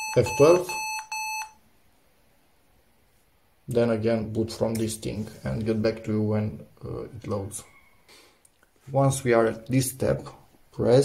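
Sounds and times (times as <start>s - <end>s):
electronic beep: 0.0s - 1.6s.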